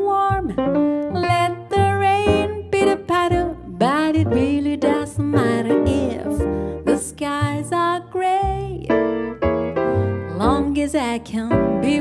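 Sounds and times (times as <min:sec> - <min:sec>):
woman singing: 0:00.0 - 0:09.0, 0:10.3 - 0:12.0
piano: 0:00.0 - 0:12.0
plucked double bass: 0:00.0 - 0:12.0.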